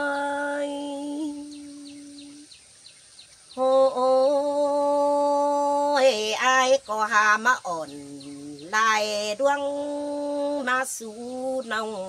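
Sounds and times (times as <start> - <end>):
woman singing long note: 0.0 - 2.4, 3.6 - 12.0
faint high chirps: 0.0 - 12.0.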